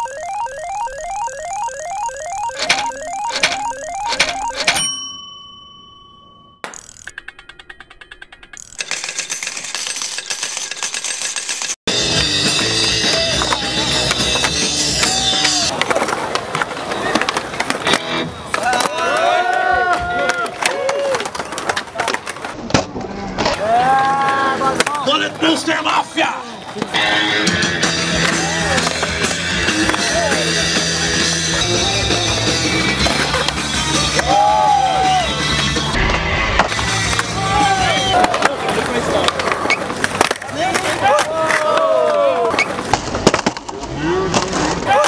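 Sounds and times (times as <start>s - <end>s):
slot machine reels clicking: 0.0s - 4.9s, 6.6s - 11.8s
ringing ding: 0.0s - 6.9s.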